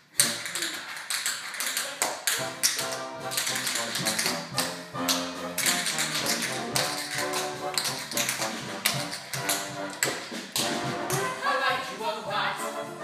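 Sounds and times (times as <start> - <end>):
tap shoes on stage floor: 0.2 - 11.3
band accompaniment: 2.4 - 13.0.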